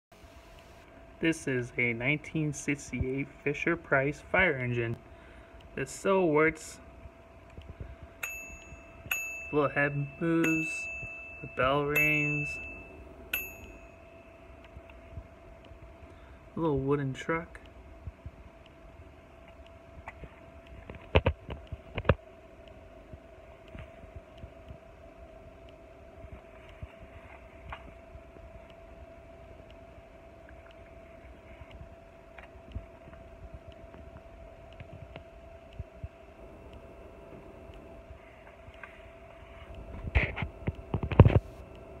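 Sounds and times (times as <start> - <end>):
steady background hum: 0.1 - 42.0.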